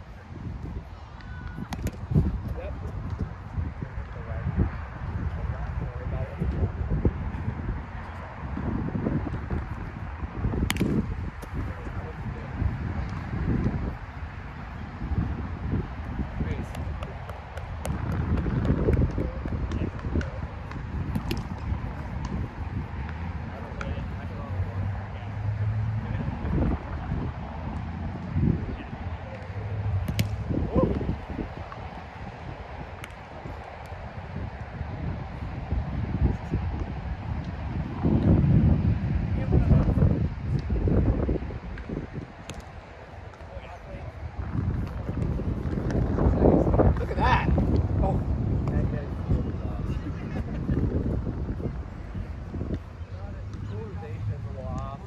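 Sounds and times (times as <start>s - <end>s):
players' voices: 0.0s - 38.4s, 39.0s - 55.0s
wind rumbling on microphone: 0.0s - 55.0s.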